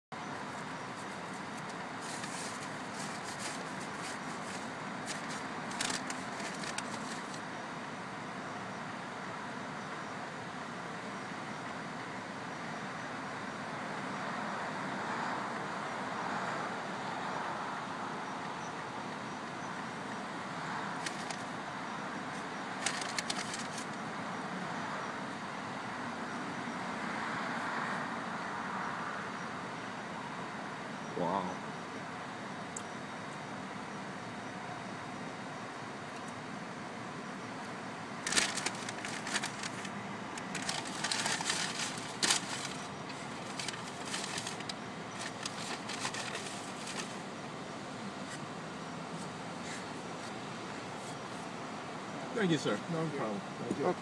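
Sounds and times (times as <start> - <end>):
road noise: 0.1 - 54.0.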